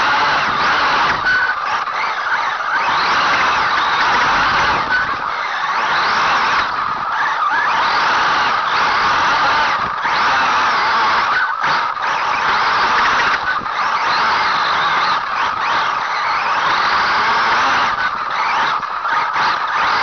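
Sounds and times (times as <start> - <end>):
electric motor whine: 0.0 - 20.0
tyres and chassis rushing: 0.0 - 20.0.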